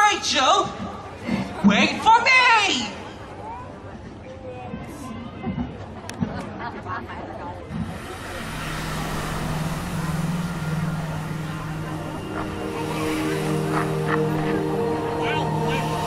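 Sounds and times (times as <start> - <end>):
audience chatter: 2.7 - 16.0
low steady drone over loudspeakers: 7.6 - 16.0
higher held tones: 7.8 - 16.0.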